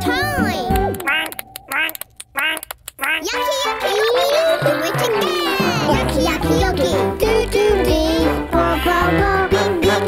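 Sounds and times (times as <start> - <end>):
cartoon background music: 0.0 - 10.0
squeaky cartoon character calls: 1.0 - 3.5.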